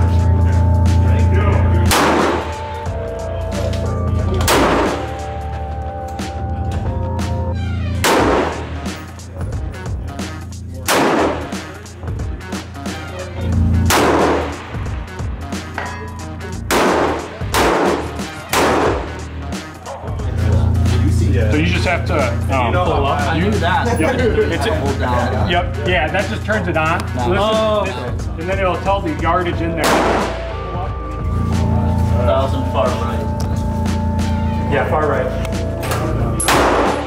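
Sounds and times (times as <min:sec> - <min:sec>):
background music with bass: 0:00.0 - 0:37.0
rifle shots with echo: 0:01.9 - 0:02.7, 0:04.5 - 0:05.1, 0:08.0 - 0:08.8, 0:10.9 - 0:11.7, 0:13.9 - 0:14.9, 0:16.7 - 0:19.1, 0:29.8 - 0:30.5, 0:36.5 - 0:37.0.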